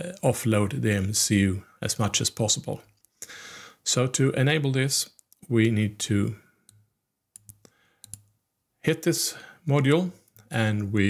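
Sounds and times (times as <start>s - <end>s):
computer mouse clicks: 6.7s - 8.4s.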